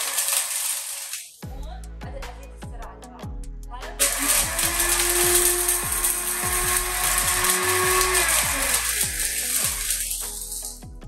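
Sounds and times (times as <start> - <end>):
blender motor whirring: 0.0 - 1.2, 4.0 - 10.6.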